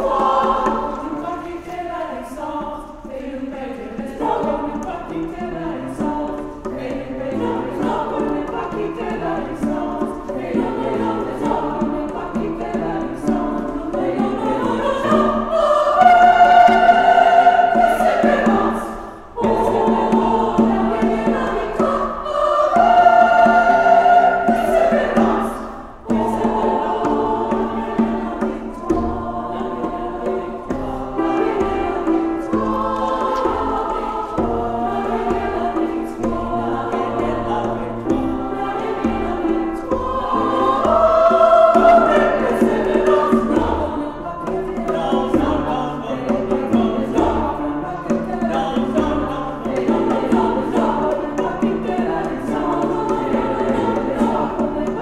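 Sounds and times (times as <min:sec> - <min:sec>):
choir singing chords: 0:00.0 - 0:55.0.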